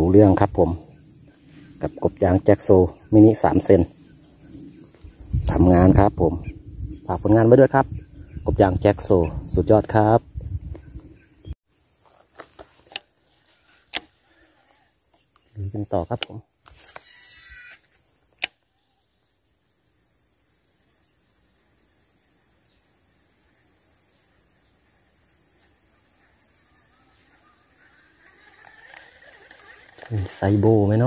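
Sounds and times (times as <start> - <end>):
insects chirring: 0.0 - 31.0
fishing reel line whirring: 16.8 - 18.0, 27.4 - 31.0
reel click: 28.4 - 30.7.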